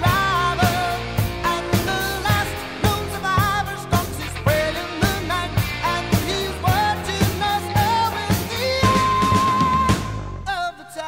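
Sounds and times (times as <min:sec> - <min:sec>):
steady drum beat: 0:00.0 - 0:10.5
pop-rock song with singing: 0:00.0 - 0:11.0.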